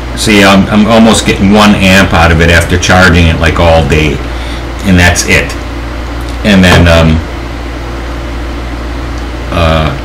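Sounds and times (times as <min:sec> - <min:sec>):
electrical equipment hum and hiss: 0:00.0 - 0:10.0.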